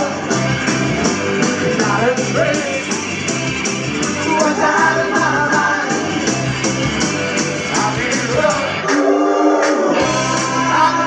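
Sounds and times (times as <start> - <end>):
live rock band playing: 0.0 - 8.9, 9.9 - 11.0
man singing: 1.7 - 2.9, 4.3 - 6.1, 7.6 - 9.1, 9.9 - 11.0.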